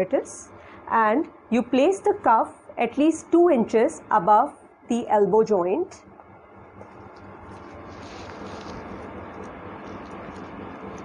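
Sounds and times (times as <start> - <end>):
steady hiss and rumble: 0.0 - 11.0.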